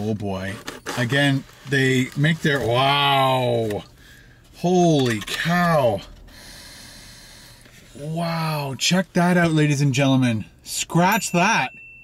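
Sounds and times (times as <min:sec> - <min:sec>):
man breathing in through nose: 0:06.3 - 0:07.9.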